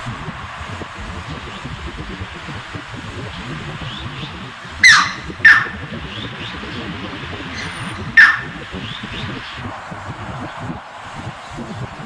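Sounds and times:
heron giving sharp falling calls: 0:04.8 - 0:05.9, 0:07.5 - 0:08.6.

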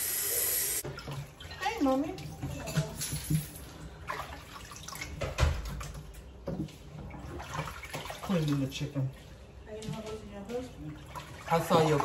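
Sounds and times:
water sloshing in sink: 0:00.8 - 0:12.0.

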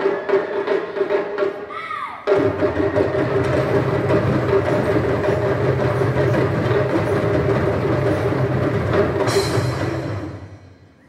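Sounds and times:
hand drums rolling: 0:02.3 - 0:10.6.

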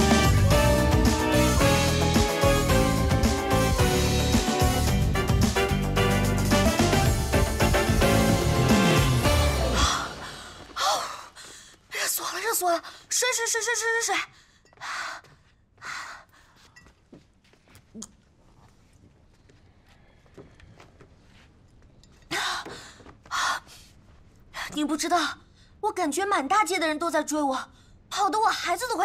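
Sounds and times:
woman breathing: 0:09.6 - 0:12.0
woman gasping: 0:09.6 - 0:12.0.

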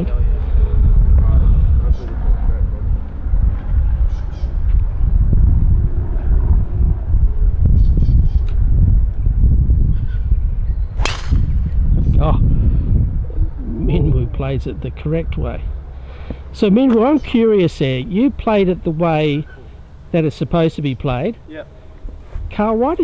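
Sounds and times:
low rumble: 0:00.0 - 0:16.0
golf club hitting ball: 0:11.0 - 0:11.8.

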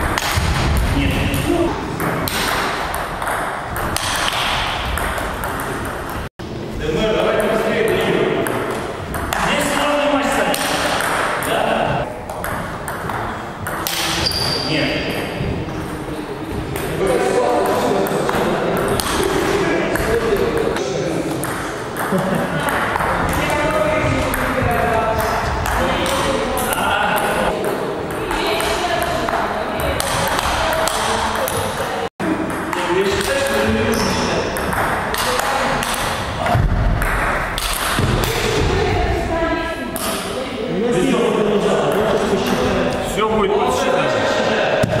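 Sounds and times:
indistinct voices: 0:13.1 - 0:37.0.

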